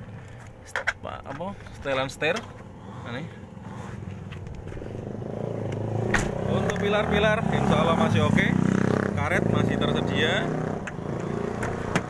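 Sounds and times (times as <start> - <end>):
motor vehicle engine: 0.0 - 12.0.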